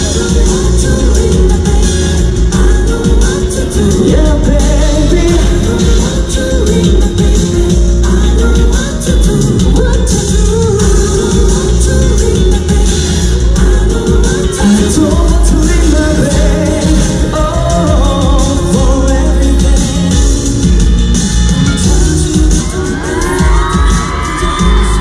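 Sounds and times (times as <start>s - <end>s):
live pop song over loudspeakers: 0.0s - 25.0s
man singing: 0.0s - 25.0s.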